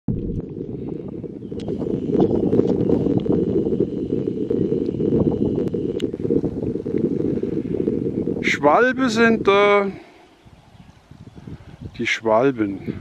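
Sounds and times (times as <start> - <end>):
wind blowing over microphone: 0.1 - 13.0.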